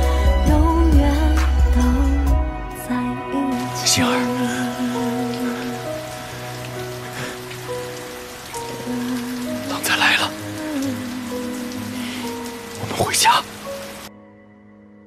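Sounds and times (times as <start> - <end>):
steady rain falling: 0.0 - 2.3, 3.2 - 14.1
slow background music: 0.0 - 15.0.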